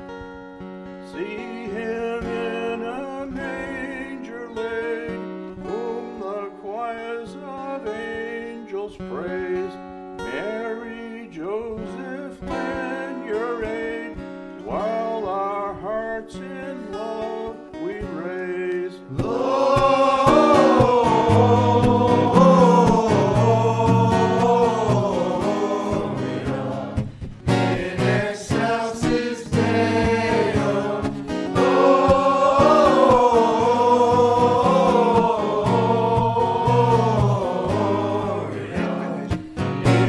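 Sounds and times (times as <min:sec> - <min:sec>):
acoustic guitar: 0:00.0 - 0:40.0
man singing: 0:01.1 - 0:27.0, 0:27.6 - 0:40.0
men's choir singing: 0:19.1 - 0:40.0.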